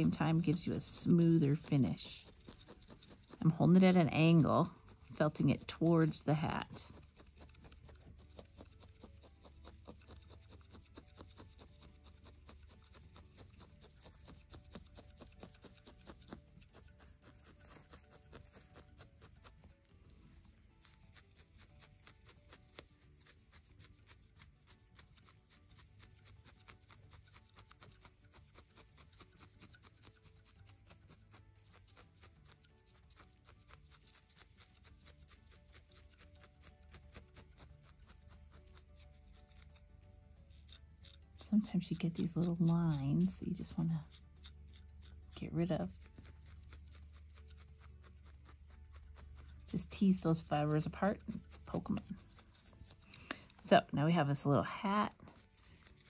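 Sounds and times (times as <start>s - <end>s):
felting needles poking wool: 0.0s - 56.0s.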